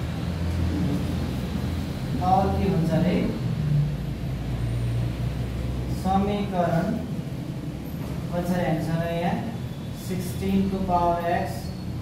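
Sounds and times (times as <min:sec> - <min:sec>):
low mechanical drone: 0:00.0 - 0:12.0.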